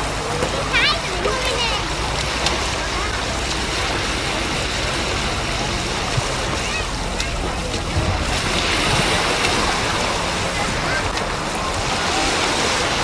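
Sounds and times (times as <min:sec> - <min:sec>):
small waves on beach: 0:00.0 - 0:13.0
distant children's voices: 0:00.3 - 0:13.0
wind rumble on microphone: 0:03.8 - 0:13.0.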